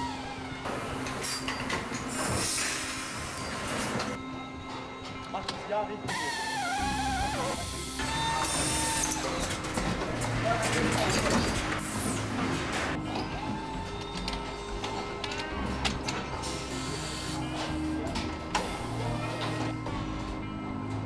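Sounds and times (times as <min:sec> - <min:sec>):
background music: 0:00.0 - 0:21.0
machine hum: 0:06.0 - 0:21.0.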